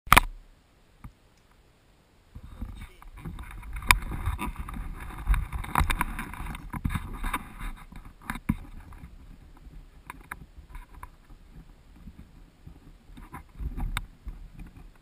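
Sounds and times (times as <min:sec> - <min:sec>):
helmet rubbing and scraping: 0:02.4 - 0:10.0.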